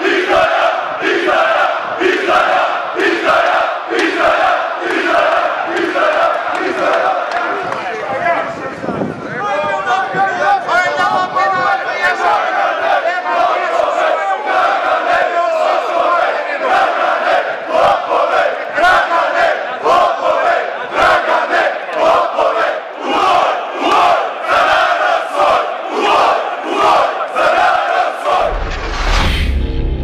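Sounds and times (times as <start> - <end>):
crowd shouting and chanting: 0.0 - 29.2.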